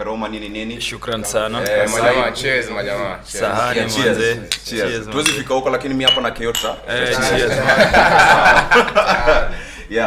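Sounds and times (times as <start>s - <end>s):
glasses clinking in a toast: 6.1s - 6.8s.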